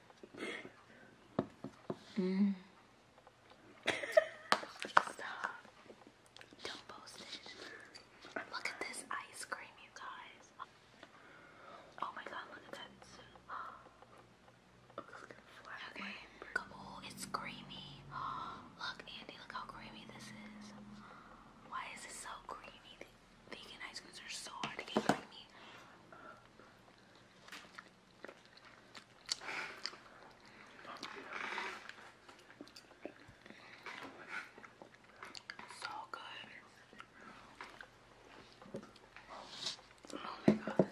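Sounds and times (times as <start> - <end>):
soft chewing: 0.0 - 18.1, 19.0 - 40.9
people whispering: 6.5 - 10.7, 15.0 - 25.6, 35.5 - 37.2.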